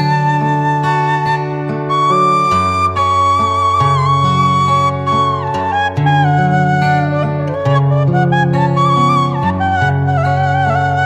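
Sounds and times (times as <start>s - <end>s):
bamboo flute melody: 0.0s - 11.0s.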